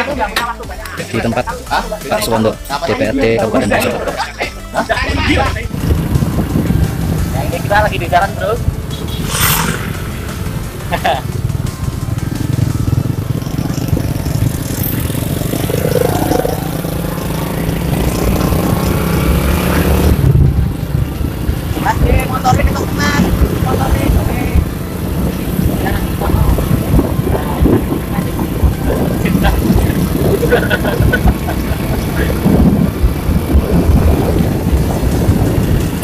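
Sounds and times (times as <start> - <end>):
wind rumble on microphone: 5.1 - 36.0
motorcycle engine running: 5.6 - 36.0.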